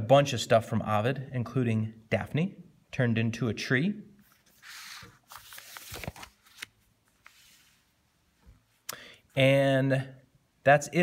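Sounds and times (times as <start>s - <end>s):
book pages turning: 4.2s - 7.9s.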